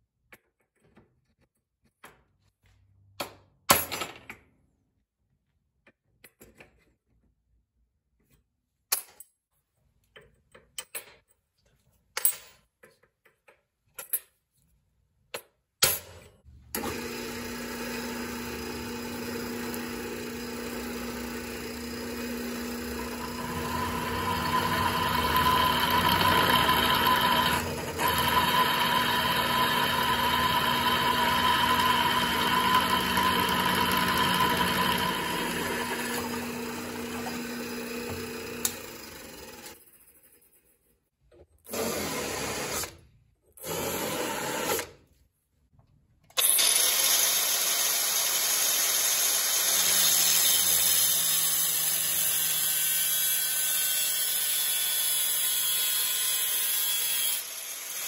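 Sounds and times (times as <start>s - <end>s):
drill press motor hum: 16.7s - 39.8s
drill bit whining through steel: 16.8s - 39.8s, 46.4s - 58.0s.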